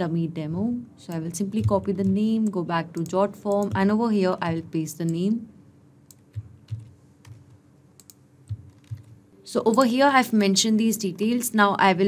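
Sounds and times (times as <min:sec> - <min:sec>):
keyboard and mouse clicks: 0:01.1 - 0:04.0, 0:06.0 - 0:10.0.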